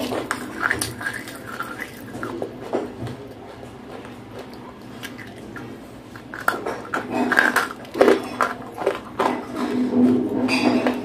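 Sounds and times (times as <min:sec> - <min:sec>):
crunching and chewing clay: 0:00.0 - 0:10.5.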